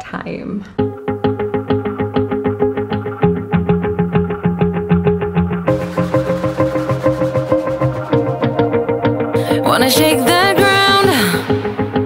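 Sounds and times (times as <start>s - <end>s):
plucked guitar music: 0.8s - 12.0s.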